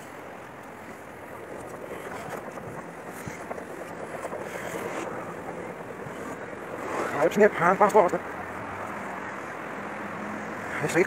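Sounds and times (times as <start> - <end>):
wind on microphone: 0.0 - 9.7
escalator running: 0.0 - 10.7.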